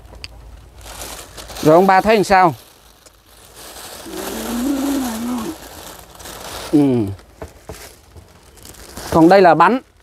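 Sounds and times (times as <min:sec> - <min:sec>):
food packet crinkling: 0:00.4 - 0:10.0
man humming: 0:04.0 - 0:05.6.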